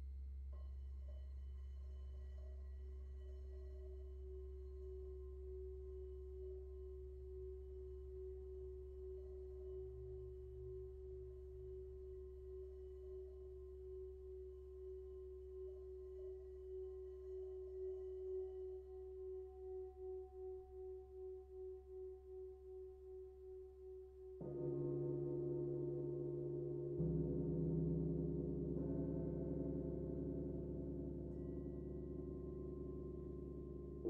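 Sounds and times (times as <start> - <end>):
singing bowl tone: 0.6 - 34.0.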